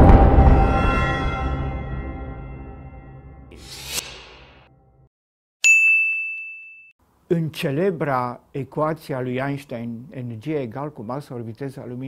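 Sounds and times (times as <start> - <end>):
bright chime ding: 5.6 - 7.0.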